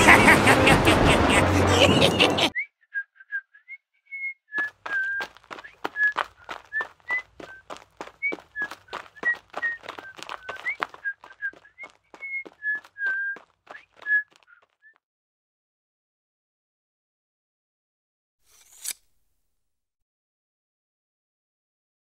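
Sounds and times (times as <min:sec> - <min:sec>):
person whistling a jaunty tune: 0:01.8 - 0:14.6.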